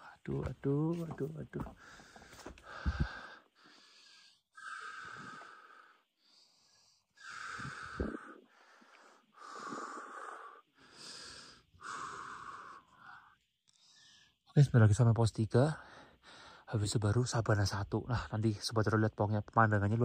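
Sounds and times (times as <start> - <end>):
person breathing hard: 1.8 - 14.4.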